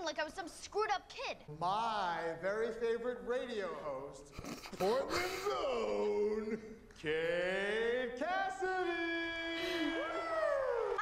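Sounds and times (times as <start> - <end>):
man's sung announcement: 5.1 - 10.0
higher voices whooping: 9.5 - 11.0.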